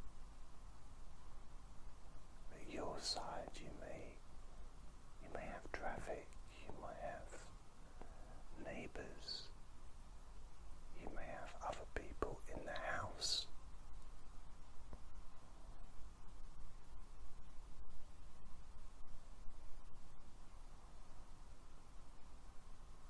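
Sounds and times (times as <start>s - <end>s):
man whispering: 2.5s - 4.2s, 5.2s - 9.6s, 10.9s - 13.6s.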